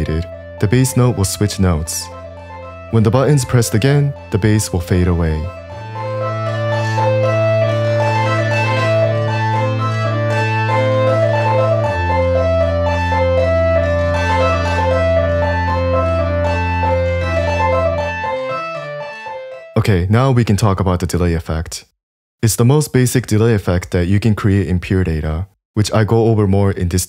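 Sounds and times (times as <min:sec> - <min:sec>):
filtered sawtooth synth bass: 0:00.0 - 0:19.8.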